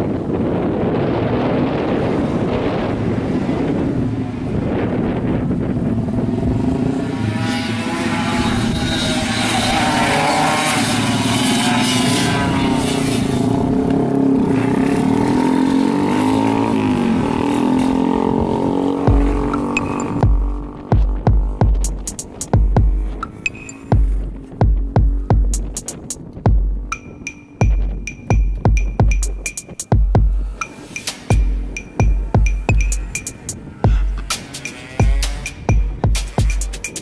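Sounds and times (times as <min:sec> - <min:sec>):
two-stroke motorcycle engine revving: 0:05.7 - 0:37.0
thumping music beat: 0:19.1 - 0:37.0.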